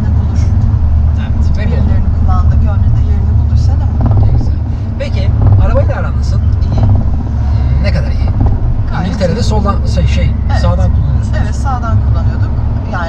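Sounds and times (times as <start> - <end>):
car engine and tyre rumble: 0.0 - 13.0
people talking: 1.2 - 7.0, 7.6 - 13.0.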